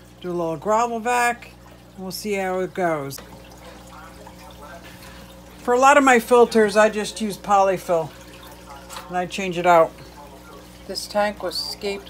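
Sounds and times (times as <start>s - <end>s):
water trickling into tank: 0.0s - 12.0s.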